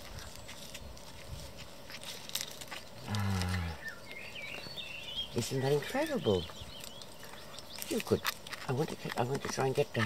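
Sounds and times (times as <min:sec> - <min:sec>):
animal chewing clicks: 0:06.7 - 0:10.0.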